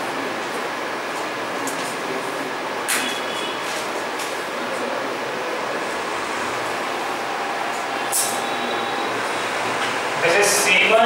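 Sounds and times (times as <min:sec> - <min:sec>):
steady hiss: 0:04.6 - 0:11.0.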